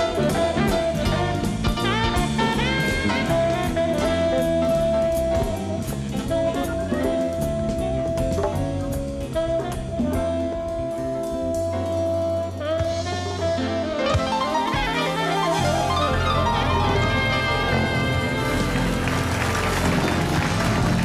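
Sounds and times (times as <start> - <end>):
steady drum beat: 0.0 - 21.0
tenor saxophone long notes: 0.0 - 21.0.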